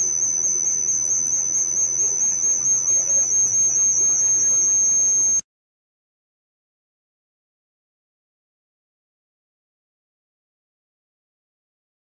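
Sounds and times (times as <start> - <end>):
high-pitched feedback whistle: 0.0 - 5.4.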